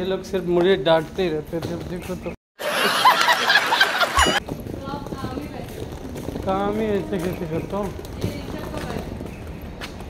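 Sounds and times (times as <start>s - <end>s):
audience laughter: 2.6s - 4.4s
high-pitched sound effect: 4.2s - 4.4s.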